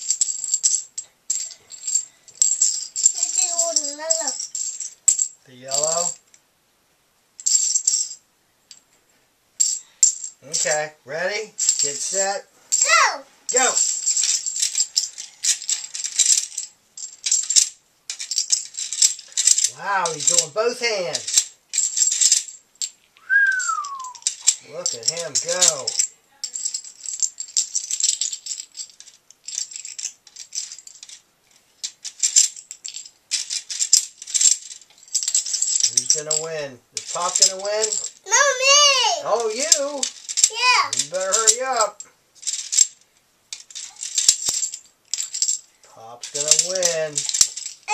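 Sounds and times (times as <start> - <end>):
plastic checkers rattling: 0.0 - 6.3, 7.4 - 8.8, 9.6 - 47.9.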